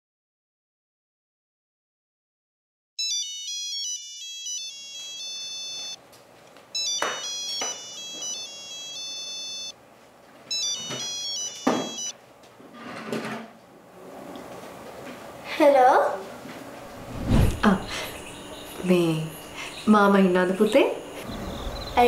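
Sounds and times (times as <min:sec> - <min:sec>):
phone ringtone: 0:03.0 - 0:06.0, 0:06.8 - 0:09.8, 0:10.5 - 0:12.2.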